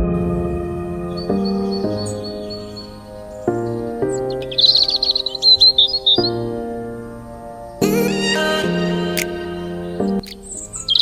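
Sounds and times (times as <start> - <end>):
soft music of sustained chords: 0.0 - 11.0
songbird chirping high notes: 0.0 - 11.0.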